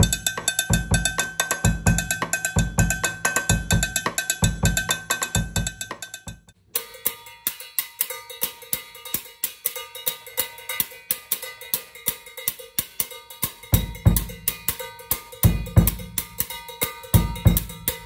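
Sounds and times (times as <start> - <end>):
cowbell struck with drumstick: 0.0 - 18.0.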